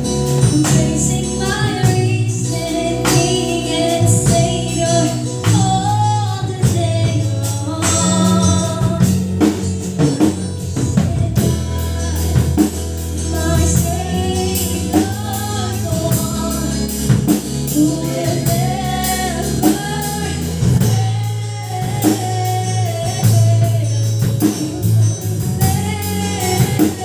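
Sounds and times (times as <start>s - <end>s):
instrumental accompaniment with bass: 0.0s - 27.0s
woman singing into microphone: 0.0s - 27.0s.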